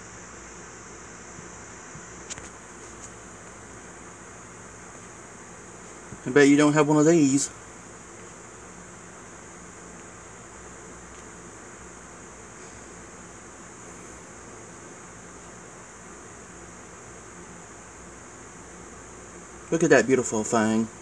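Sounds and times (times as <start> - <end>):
faint hum: 0.0 - 21.0
low background hiss: 0.0 - 21.0.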